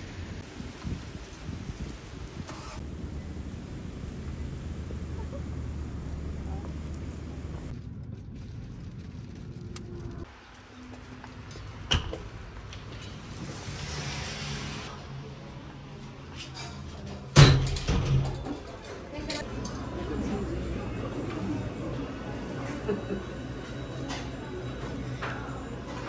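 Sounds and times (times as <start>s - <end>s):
wind rumble on microphone: 0.0s - 2.8s.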